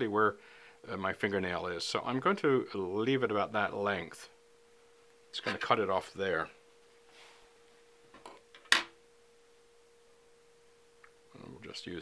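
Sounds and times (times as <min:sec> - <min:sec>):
faint steady hum: 0:00.0 - 0:12.0.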